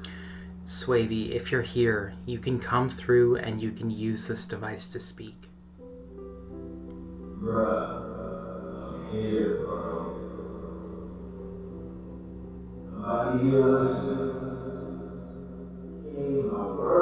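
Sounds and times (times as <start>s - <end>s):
steady hum: 0.0s - 17.0s
sustained droning tones: 0.0s - 17.0s.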